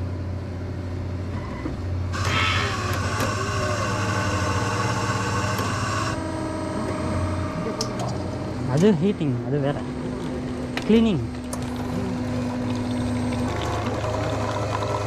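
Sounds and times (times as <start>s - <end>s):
coffee machine low hum: 0.0s - 15.0s
coffee machine high whirring: 1.2s - 15.0s.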